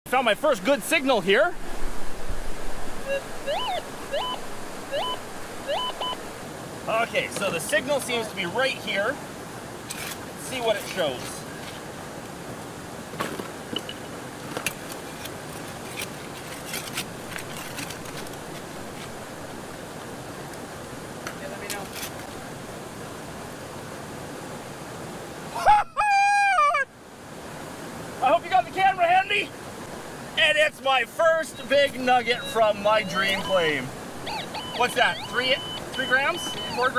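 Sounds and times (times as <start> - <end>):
steady hiss: 0.1 - 25.6, 26.8 - 36.9
metal detector tones: 3.0 - 6.2, 32.3 - 36.9
man whooping: 25.5 - 26.9.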